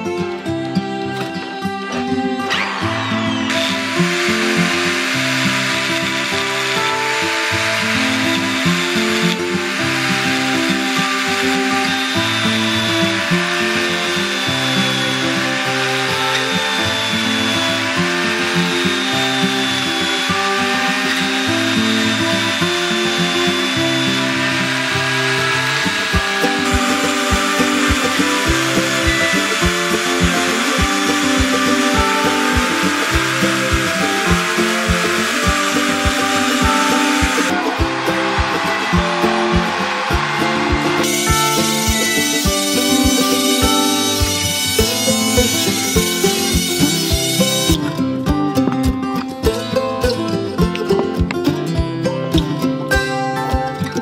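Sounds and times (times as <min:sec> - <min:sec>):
electric drill whirring: 0:00.6 - 0:47.9
background music with beat: 0:00.8 - 0:54.0
chisel scraping spinning wood: 0:02.7 - 0:38.9.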